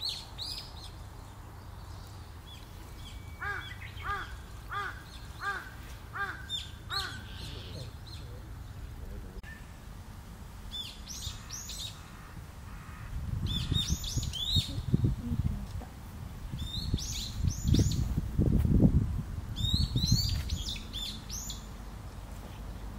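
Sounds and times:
thin chirps of small birds: 0:00.0 - 0:05.6, 0:13.5 - 0:15.2, 0:16.6 - 0:18.2, 0:19.6 - 0:22.8
bird calling ringing notes: 0:02.8 - 0:09.8.

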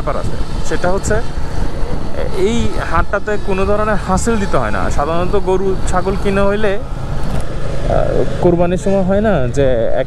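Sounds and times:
man talking: 0:00.0 - 0:01.3, 0:02.0 - 0:06.9, 0:07.8 - 0:10.0
wind and road noise: 0:00.0 - 0:10.0.

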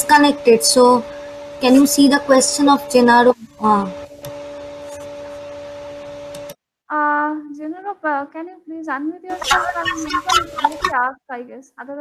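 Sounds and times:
electrical hum with hiss: 0:00.0 - 0:07.5, 0:09.3 - 0:11.1
person speaking: 0:09.3 - 0:11.0.

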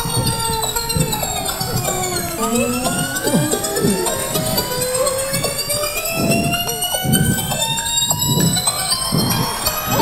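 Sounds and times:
pulsing low beat: 0:00.0 - 0:10.0
rising rewind tone: 0:00.0 - 0:10.0.

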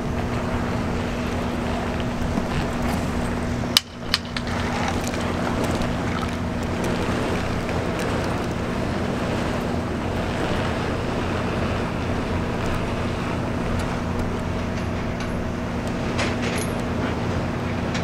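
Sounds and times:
tractor engine humming: 0:00.0 - 0:18.0.

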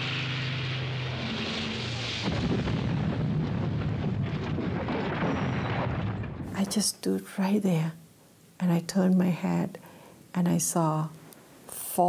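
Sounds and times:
propeller plane engine drone: 0:00.0 - 0:02.3
bombs exploding rumble: 0:00.4 - 0:06.6.

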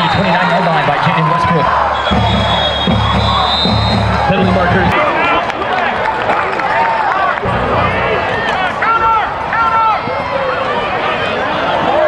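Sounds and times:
crowd yelling and cheering: 0:00.0 - 0:12.0.

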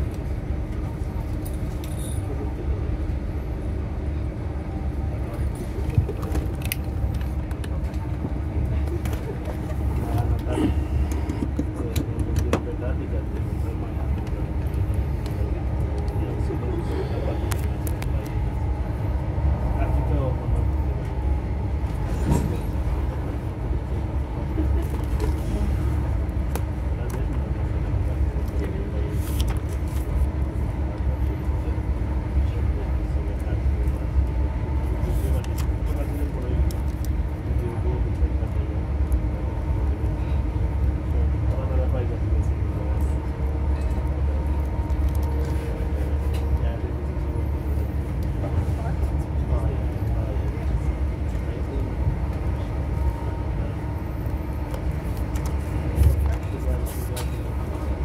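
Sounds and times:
train coach rumbling at speed: 0:00.0 - 0:58.0.

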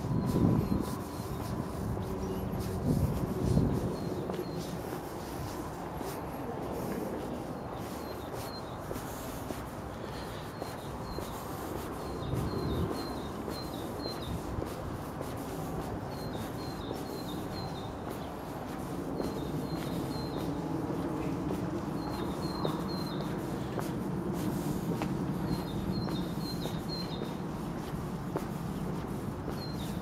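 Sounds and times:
songbird chirping: 0:00.0 - 0:14.8, 0:15.6 - 0:30.0
street noise rumble: 0:00.0 - 0:30.0.

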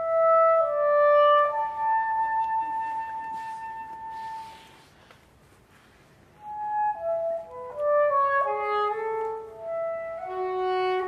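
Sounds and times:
soprano saxophone long note: 0:06.4 - 0:11.0.

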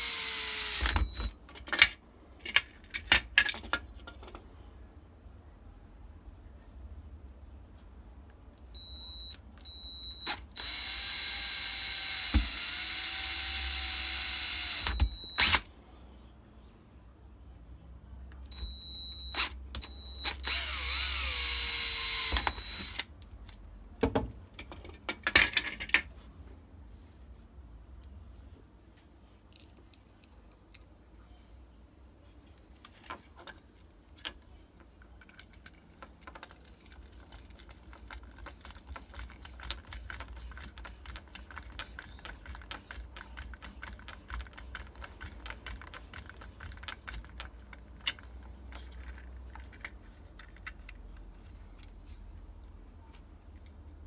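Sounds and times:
power drill whining: 0:00.0 - 0:01.3, 0:10.2 - 0:15.6, 0:19.3 - 0:23.0.

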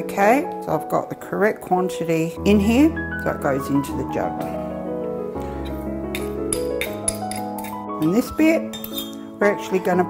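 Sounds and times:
background music: 0:00.0 - 0:10.0
knife clinking on spoon: 0:05.7 - 0:07.8, 0:08.7 - 0:09.2.

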